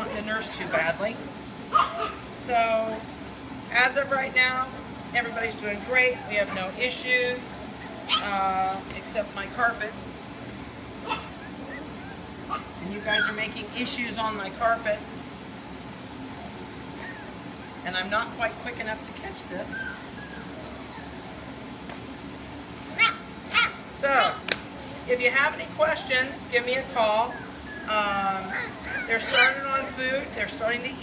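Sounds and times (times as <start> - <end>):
puppies whimpering: 5.1 - 8.7, 10.5 - 13.6, 16.2 - 17.9, 19.5 - 21.7, 25.8 - 30.2
puppy high squeaks: 27.3 - 29.6.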